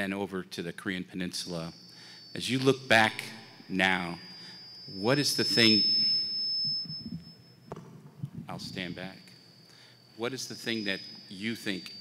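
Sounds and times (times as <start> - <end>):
microphone feedback whine: 0.9 - 12.0.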